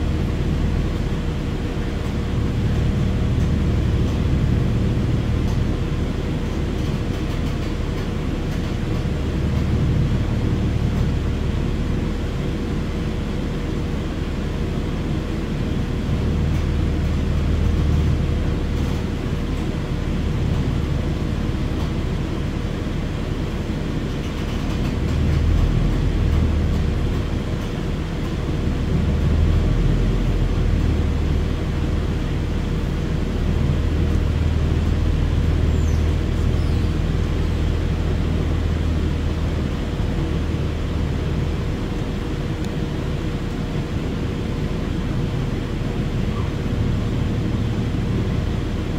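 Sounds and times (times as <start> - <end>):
low rumble of bus and road: 0.0 - 48.9.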